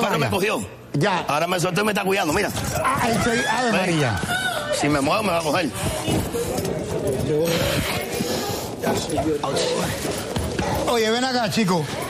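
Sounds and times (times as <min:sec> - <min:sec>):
noisy background: 0:00.0 - 0:12.0
indistinct human voices: 0:02.5 - 0:11.1.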